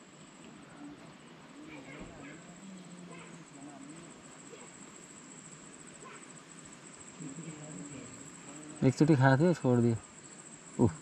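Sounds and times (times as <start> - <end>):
high-pitched insect trill: 0.0 - 11.0
faint murmuring voices: 0.4 - 10.1.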